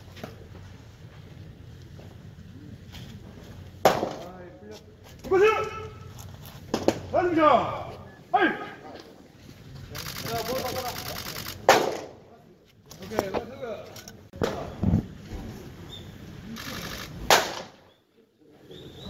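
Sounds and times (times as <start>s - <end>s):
voices: 0.9s - 17.3s
baseball smacking into catcher's mitt: 3.8s - 4.3s.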